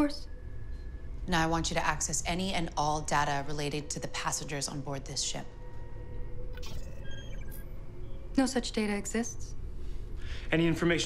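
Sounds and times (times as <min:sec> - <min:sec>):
low ship ambience hum: 0:00.0 - 0:11.0
electronic chattering: 0:06.6 - 0:07.7
quick high beeps: 0:06.6 - 0:07.7.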